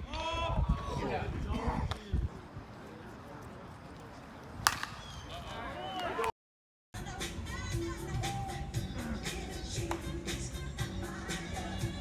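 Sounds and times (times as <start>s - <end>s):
baseball bat hitting ball: 4.6s - 5.0s.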